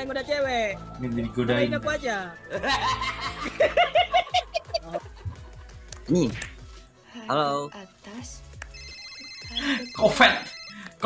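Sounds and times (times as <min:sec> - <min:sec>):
high electronic ringing tone: 0:08.7 - 0:11.0.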